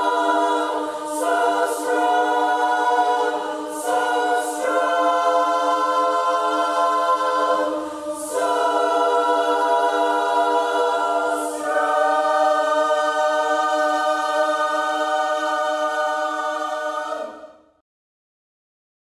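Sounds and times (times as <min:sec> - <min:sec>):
choir singing sustained chords: 0:00.0 - 0:17.8.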